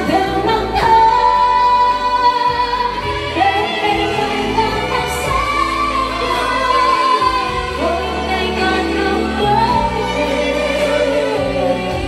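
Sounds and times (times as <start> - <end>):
live band playing: 0.0 - 12.0
woman singing into microphone: 0.0 - 12.0.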